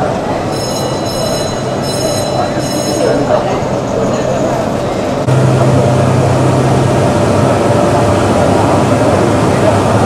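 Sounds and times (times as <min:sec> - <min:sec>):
overhead crane rumbling: 0:00.0 - 0:10.0
high ringing whine: 0:00.3 - 0:09.8.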